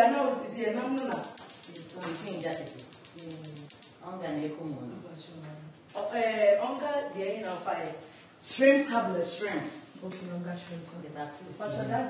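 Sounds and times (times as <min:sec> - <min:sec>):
fast high ticking: 0:01.0 - 0:04.0
person speaking: 0:01.0 - 0:04.0.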